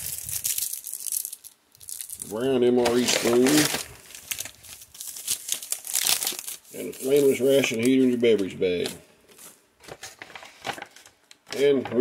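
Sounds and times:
plastic and foil pouches crinkling: 0:00.0 - 0:12.0.

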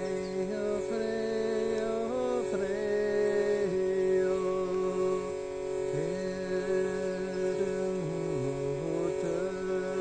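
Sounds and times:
man chanting a long sung note: 0:00.0 - 0:10.0
steady sustained tone: 0:00.0 - 0:10.0.

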